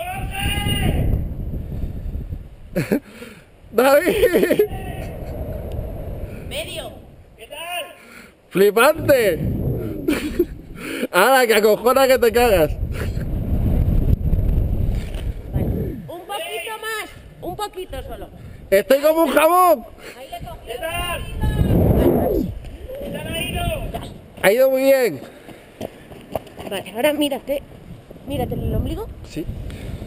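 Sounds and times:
low rumbling wind noise: 0.0s - 7.4s, 8.7s - 16.2s, 17.1s - 24.4s, 27.4s - 30.0s.

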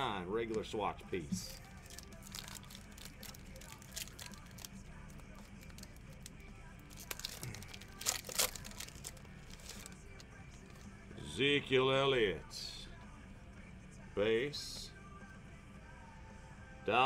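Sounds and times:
faint background music: 0.0s - 17.0s
foil pack crinkling: 1.5s - 10.8s.

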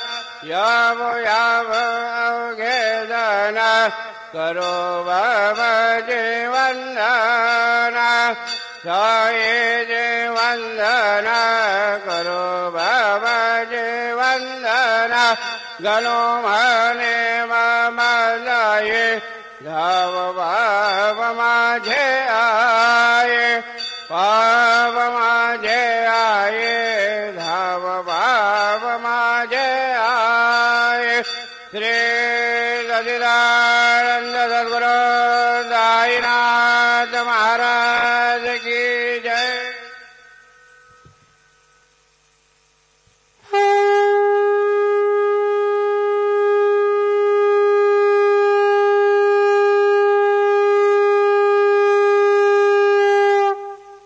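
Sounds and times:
person singing devotional song: 0.0s - 41.3s
conch shell blown: 39.4s - 54.0s.

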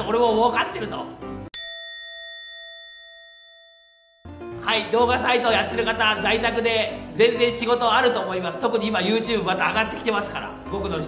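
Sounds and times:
bell-like ding: 1.5s - 4.4s.

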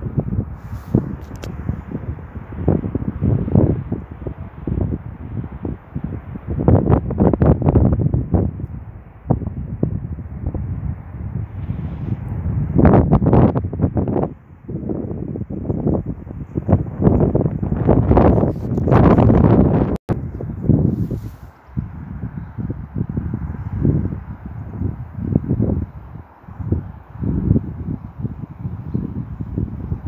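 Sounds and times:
wind gusts on microphone: 0.0s - 30.0s.

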